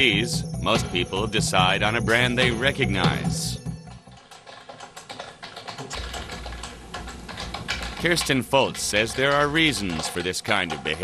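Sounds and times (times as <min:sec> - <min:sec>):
typing on computer keyboard: 0:03.8 - 0:11.0.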